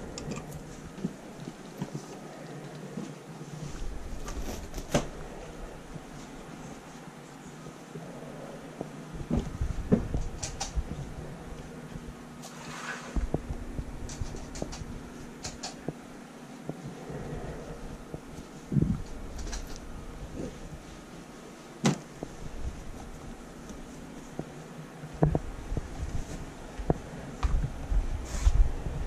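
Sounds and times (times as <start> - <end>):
fabric rustling: 16.4 - 27.1.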